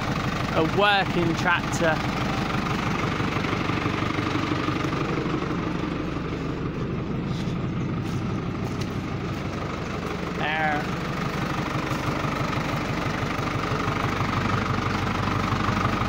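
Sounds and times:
diesel tractor engine idling: 0.0 - 16.0.

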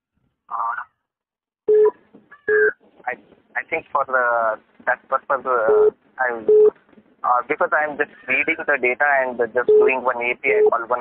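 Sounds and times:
vocal murmur over phone line: 0.5 - 1.0, 1.8 - 11.0
voice speaking over phone: 0.5 - 1.0, 3.1 - 11.0.

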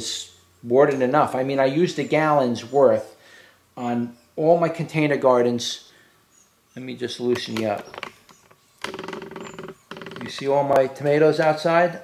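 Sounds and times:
tripod pan head creaking: 7.2 - 11.0.

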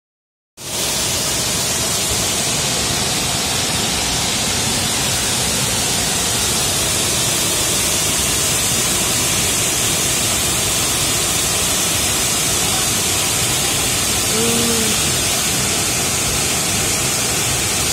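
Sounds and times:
waterfall rushing: 0.6 - 17.9.

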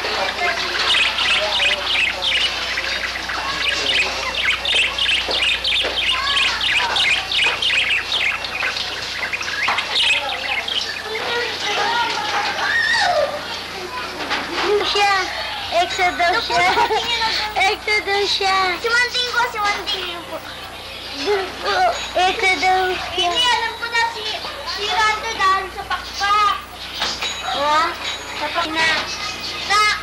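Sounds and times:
small birds chirping: 0.0 - 30.0.

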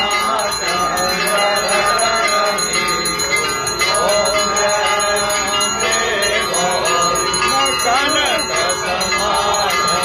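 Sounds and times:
bells rung rapidly: 0.0 - 10.0.

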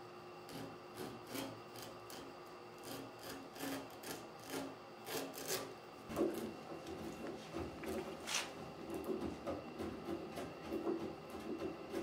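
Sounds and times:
chisel scraping wood: 0.5 - 12.0.

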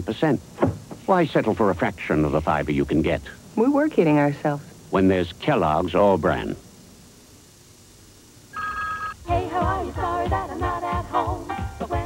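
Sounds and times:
telephone two-tone ring: 8.6 - 9.2.

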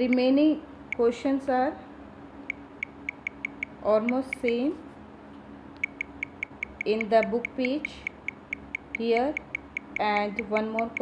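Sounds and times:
phone touch-feedback ticks: 2.5 - 4.6, 5.8 - 11.0.

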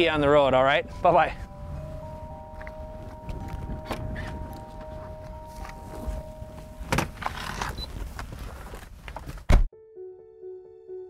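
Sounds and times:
held background music notes: 0.0 - 7.4
low wind rumble: 0.0 - 9.1
footsteps: 2.5 - 9.4.

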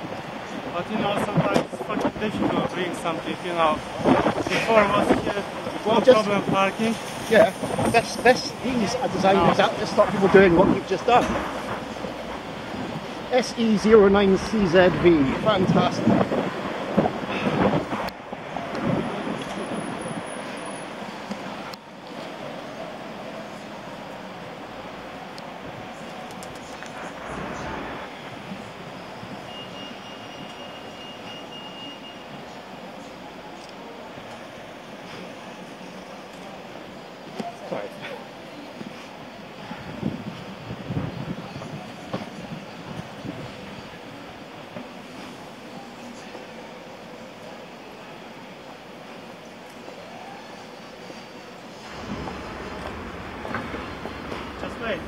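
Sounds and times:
wind on microphone: 0.0 - 13.3, 14.1 - 20.6, 39.6 - 44.0
street traffic: 0.0 - 55.0.

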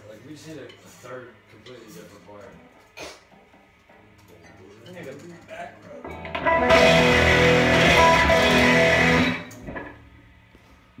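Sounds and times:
electric guitar chord ringing: 6.1 - 9.6.

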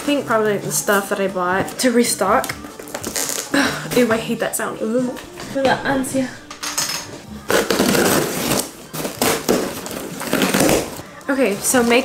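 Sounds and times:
cardboard and tape ripping: 2.8 - 3.6, 7.4 - 11.0.

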